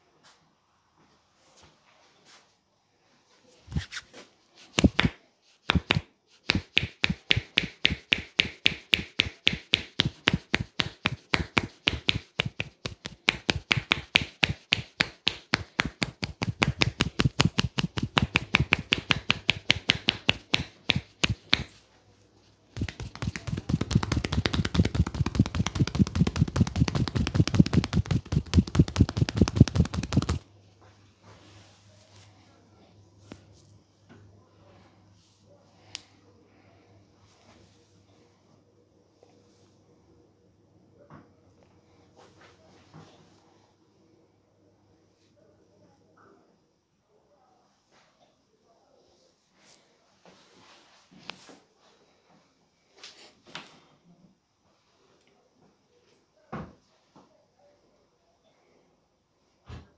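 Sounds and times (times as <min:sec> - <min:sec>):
hands striking a back: 0:04.7 - 0:21.7, 0:22.8 - 0:30.4.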